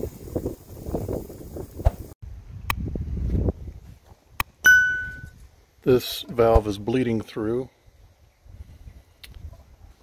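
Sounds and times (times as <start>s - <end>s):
wind rumbling on microphone: 0.0s - 4.4s, 7.9s - 10.0s.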